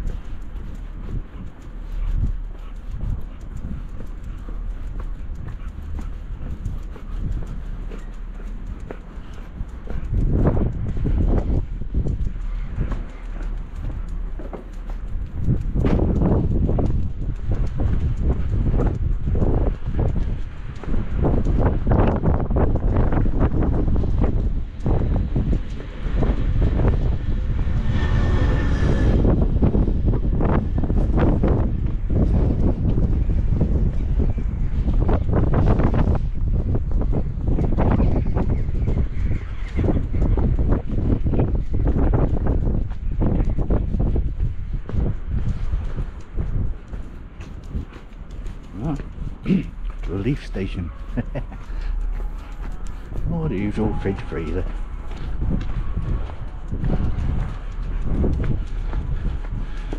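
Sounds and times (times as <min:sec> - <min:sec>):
footsteps on tarmac: 0:00.0 - 0:59.9
wind rumbling on microphone: 0:00.0 - 0:59.9.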